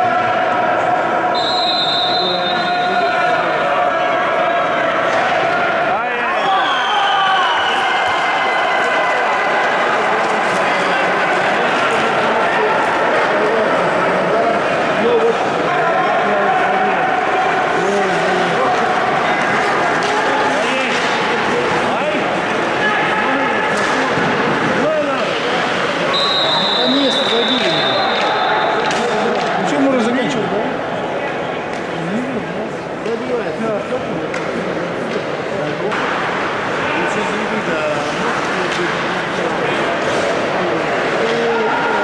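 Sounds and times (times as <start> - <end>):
players shouting: 0.0 - 32.4, 35.9 - 42.0
referee's whistle blast: 1.3 - 3.1, 26.1 - 28.8
play noise on ice: 17.6 - 29.8, 35.9 - 42.0.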